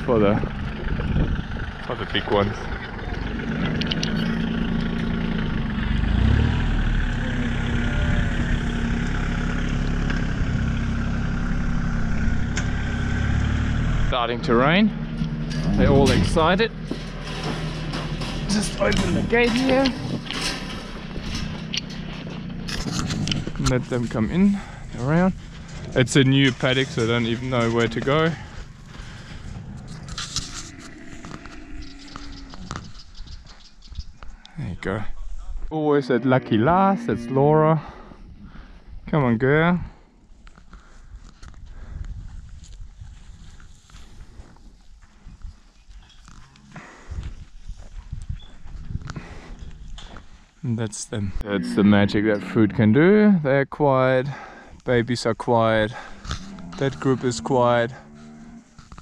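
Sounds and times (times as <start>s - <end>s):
steady low rumble: 0.0s - 35.8s, 36.4s - 53.0s
low camel sounds: 3.1s - 14.0s, 15.2s - 33.0s, 51.2s - 53.4s, 55.8s - 59.0s
camel footsteps on dirt: 14.8s - 34.3s, 40.3s - 50.7s, 55.9s - 59.0s
metal gate clicks and rattles: 14.9s - 33.2s.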